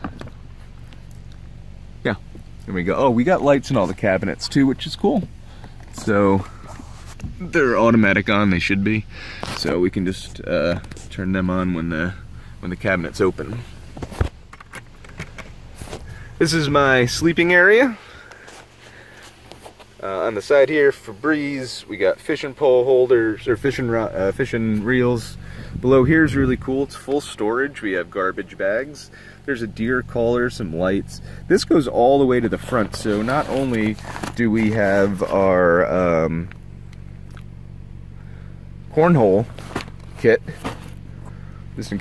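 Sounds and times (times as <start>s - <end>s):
low steady hum: 0.0s - 42.0s.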